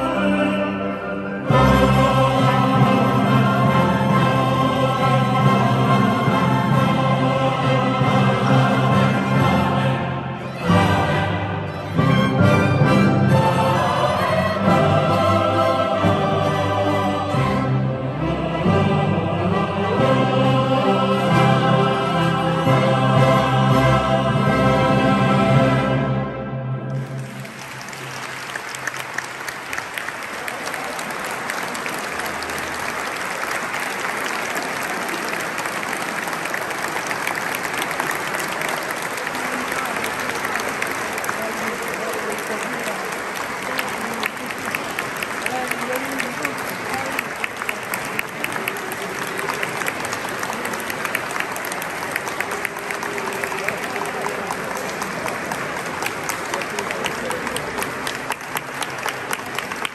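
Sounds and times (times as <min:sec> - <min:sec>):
crowd voices: 0:00.0 - 0:59.9
audience applauding: 0:26.9 - 0:59.9.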